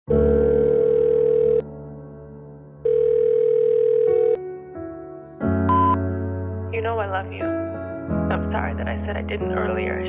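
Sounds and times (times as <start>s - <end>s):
telephone ringing beeps: 0.3s - 1.6s, 2.8s - 4.4s, 5.7s - 6.0s.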